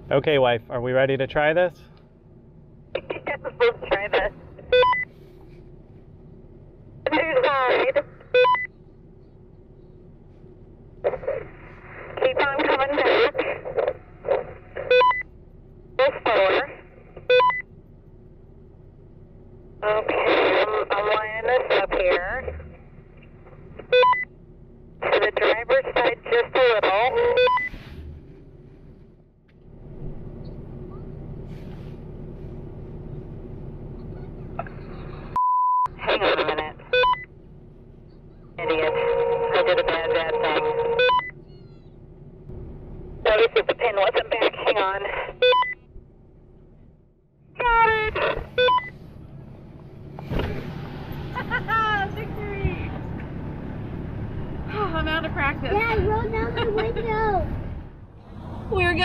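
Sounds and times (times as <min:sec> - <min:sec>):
low hum: 0:00.0 - 0:59.0
voices over two-way radio: 0:02.9 - 0:05.0, 0:07.0 - 0:08.6, 0:11.0 - 0:15.2, 0:15.9 - 0:17.6, 0:19.8 - 0:24.2, 0:25.0 - 0:27.7, 0:34.0 - 0:37.3, 0:38.0 - 0:41.8, 0:43.2 - 0:45.8, 0:47.5 - 0:48.9, 0:51.4 - 0:53.2
radio beep: 0:03.0 - 0:05.1, 0:07.1 - 0:08.7, 0:11.0 - 0:15.2, 0:16.0 - 0:17.6, 0:19.8 - 0:22.8, 0:23.8 - 0:24.3, 0:25.0 - 0:27.8, 0:34.6 - 0:37.3, 0:38.6 - 0:41.4, 0:43.3 - 0:45.8, 0:47.6 - 0:49.0.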